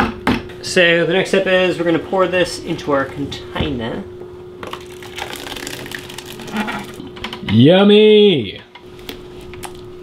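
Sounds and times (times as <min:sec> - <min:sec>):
slurry pouring into plastic tub: 0:04.8 - 0:07.0.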